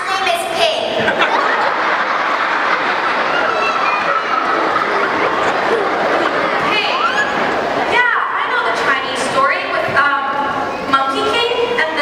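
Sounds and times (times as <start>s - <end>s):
audience laughing: 0.9s - 8.1s.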